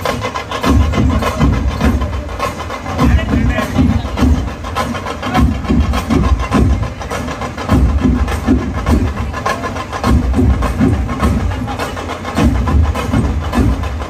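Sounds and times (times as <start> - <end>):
folk drums playing loud rhythm: 0.0 - 14.0.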